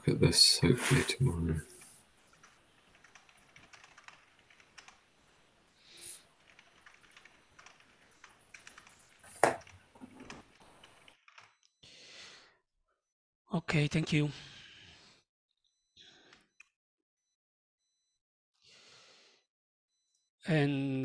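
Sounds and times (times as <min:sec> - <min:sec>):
keyboard typing clicks: 0:02.3 - 0:05.0, 0:06.4 - 0:11.8.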